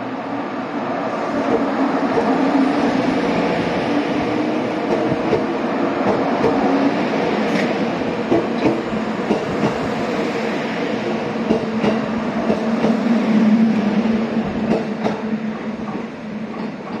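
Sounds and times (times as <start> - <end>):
train hum: 0.0 - 17.0
train wheels clicking on rail joints: 4.8 - 6.7, 7.4 - 10.0, 11.4 - 13.1, 14.6 - 17.0.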